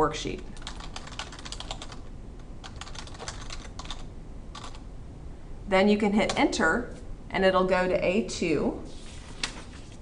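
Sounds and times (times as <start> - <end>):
typing on computer keyboard: 0.6 - 4.8.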